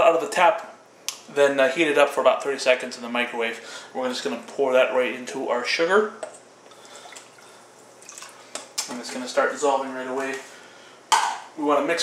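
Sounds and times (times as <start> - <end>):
small water drips: 6.6 - 8.9
water pouring into bowl: 6.7 - 8.6.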